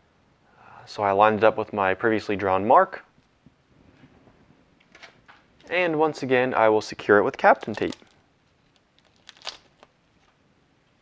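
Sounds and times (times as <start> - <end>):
tape crinkling: 7.4 - 10.4.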